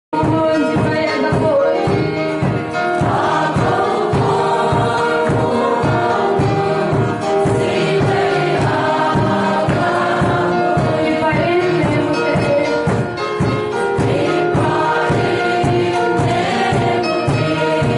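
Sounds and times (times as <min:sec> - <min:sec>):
strummed acoustic guitar: 0:00.2 - 0:17.9
mixed choir singing a hymn: 0:01.2 - 0:17.9.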